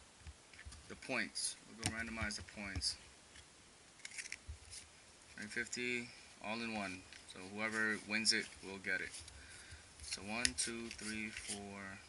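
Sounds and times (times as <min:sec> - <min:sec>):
cardboard cards rustling: 0:01.7 - 0:05.9, 0:06.5 - 0:12.0.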